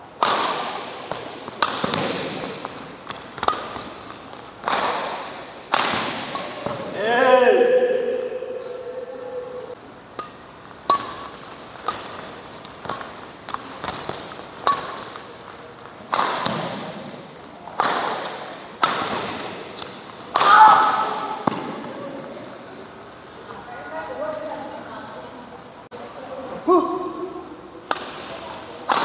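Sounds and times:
rackets striking shuttlecock: 0:00.2 - 0:06.9, 0:10.1 - 0:21.9, 0:27.9 - 0:29.0.

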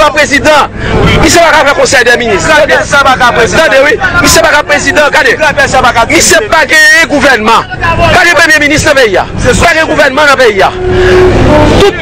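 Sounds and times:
loud street noise: 0:00.0 - 0:12.0
man speaking loudly outdoors: 0:00.0 - 0:12.0.

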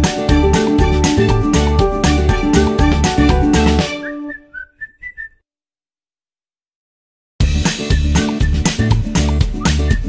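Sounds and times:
background music: 0:00.0 - 0:04.6
short whistled phrase: 0:03.9 - 0:05.4, 0:09.6 - 0:10.0.

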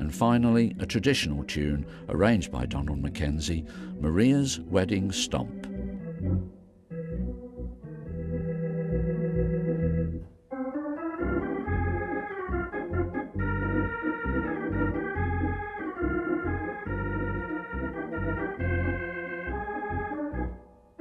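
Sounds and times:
organ playing chords: 0:00.0 - 0:21.0
bass line: 0:05.2 - 0:10.2, 0:11.2 - 0:20.6.

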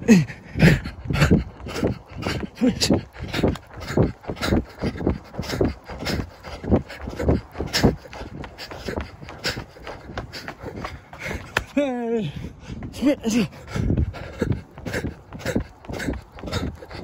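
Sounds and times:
heavy breathing in short puffs: 0:00.0 - 0:11.7, 0:12.3 - 0:17.0.

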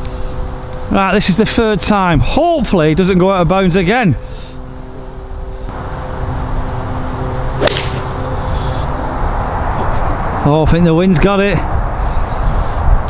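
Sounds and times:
golf club striking ball: 0:07.6 - 0:08.2
wind noise on microphone: 0:07.9 - 0:13.0.

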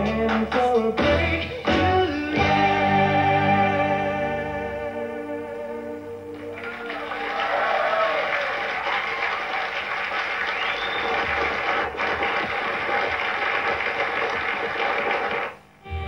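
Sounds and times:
studio audience applauding: 0:06.4 - 0:15.7.

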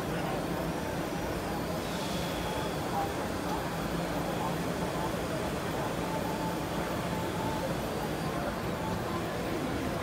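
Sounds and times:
din of machines and crowd: 0:00.0 - 0:10.0.

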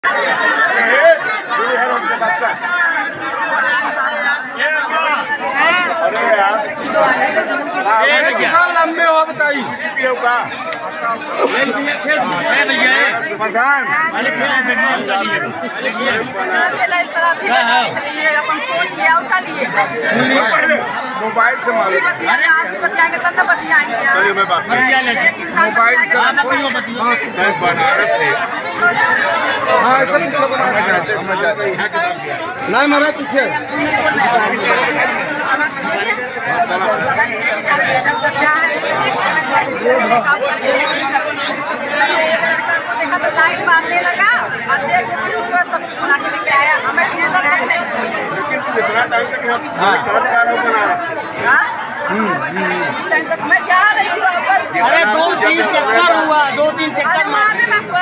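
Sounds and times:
people talking over one another: 0:00.0 - 0:58.0.

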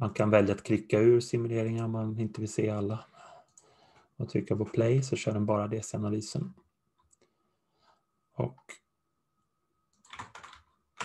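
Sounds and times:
computer keyboard keystrokes: 0:10.0 - 0:11.0.

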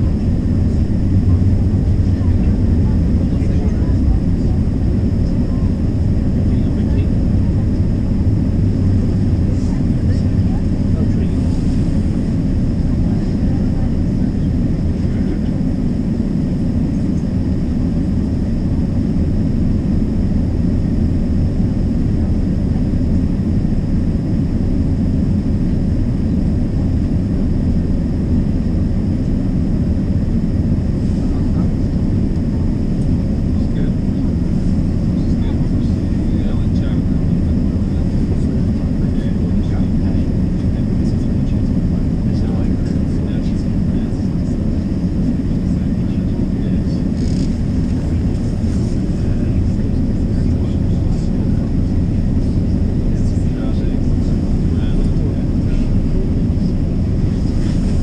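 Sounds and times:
streetcar low rumble: 0:00.0 - 0:18.8, 0:29.1 - 0:58.0.

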